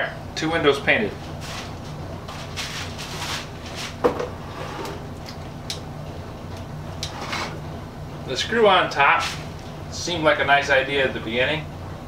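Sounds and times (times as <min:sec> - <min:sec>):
steady low hum: 0:00.0 - 0:12.0
bucket and brush handling knocks: 0:04.0 - 0:04.4.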